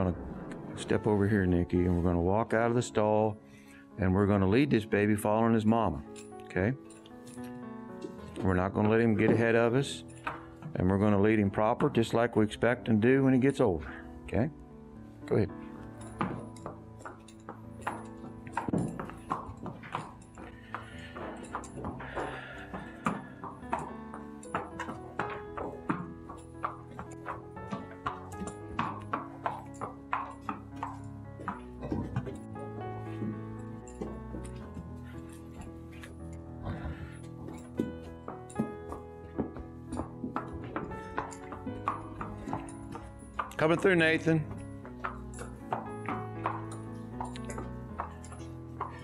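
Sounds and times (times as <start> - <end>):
background music: 0.0 - 49.0
horse hooves on concrete: 0.0 - 49.0.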